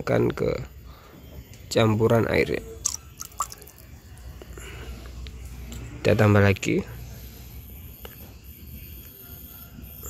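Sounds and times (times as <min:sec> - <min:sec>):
small drips: 0:02.8 - 0:03.9
liquid poured into water: 0:02.9 - 0:03.8
faint water trickle: 0:02.9 - 0:04.3.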